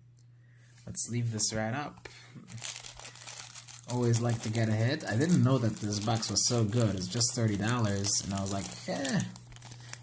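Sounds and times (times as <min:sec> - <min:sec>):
cards crinkling and rustling: 0:02.4 - 0:10.0.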